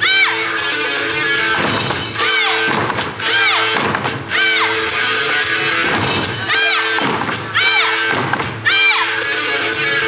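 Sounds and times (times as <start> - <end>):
loud recorded music: 0.0 - 10.0.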